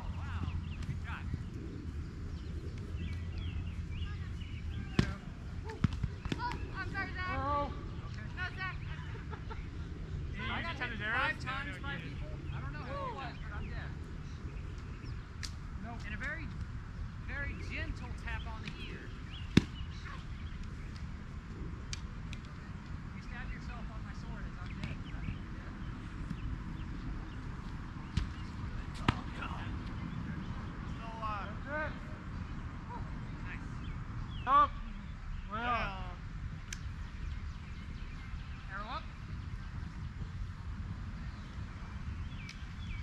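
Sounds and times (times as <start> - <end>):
low steady rumble: 0.0 - 43.0.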